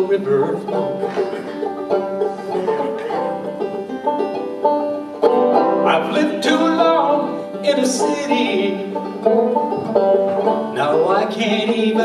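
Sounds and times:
man singing: 0.0s - 1.1s, 5.8s - 9.1s, 10.7s - 12.0s
banjo picking: 0.0s - 12.0s.

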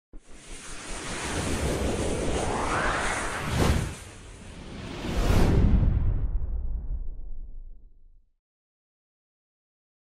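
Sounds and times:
rushing whoosh effect: 0.3s - 7.2s.

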